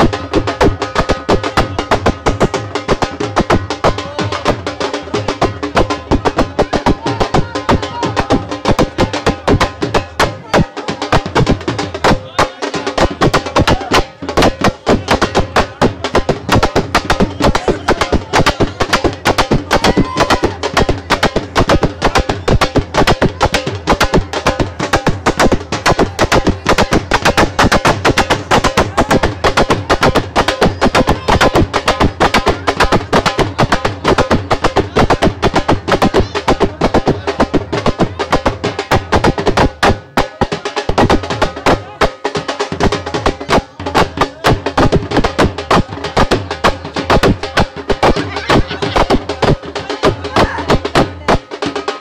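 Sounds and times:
dhol drums beating fast: 0.0s - 52.0s.

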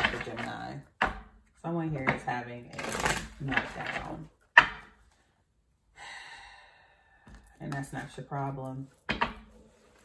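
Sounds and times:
soft sigh of breath: 5.9s - 7.4s.

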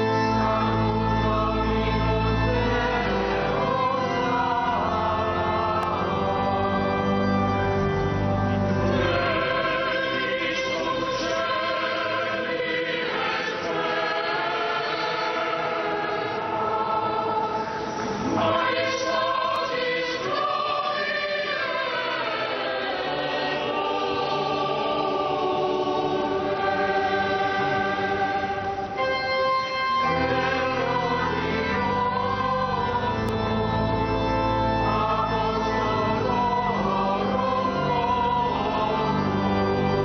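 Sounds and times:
choir singing sacred music: 0.0s - 40.0s.

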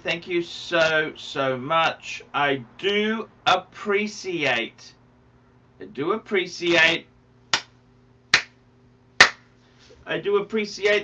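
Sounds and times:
sharp hand claps: 7.5s - 8.6s, 9.2s - 9.5s.

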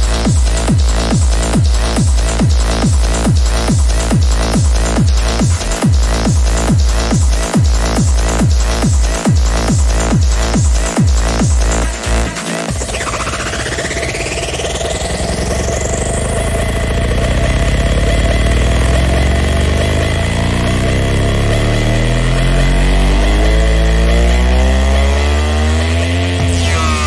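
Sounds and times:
deep bass: 0.0s - 27.0s
trance music: 0.0s - 27.0s
buzzy synth sliding upward: 11.7s - 27.0s
rising sweep: 12.3s - 27.0s.

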